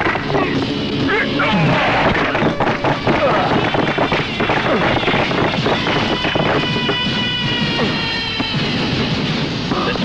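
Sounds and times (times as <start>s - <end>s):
action film soundtrack: 0.0s - 10.0s.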